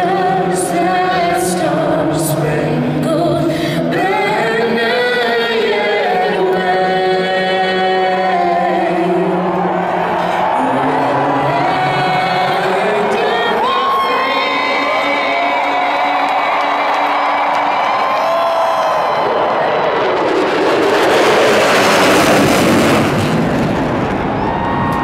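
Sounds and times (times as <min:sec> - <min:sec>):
stadium crowd cheering: 0:07.8 - 0:25.0
jet engines flying over: 0:08.8 - 0:25.0.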